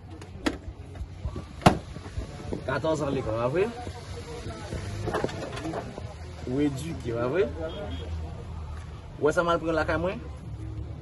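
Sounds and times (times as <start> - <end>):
voices talking: 0.0 - 10.9.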